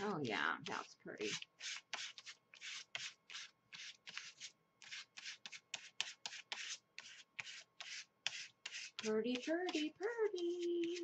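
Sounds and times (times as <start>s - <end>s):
sponge rubbing on paper: 0.0s - 11.0s.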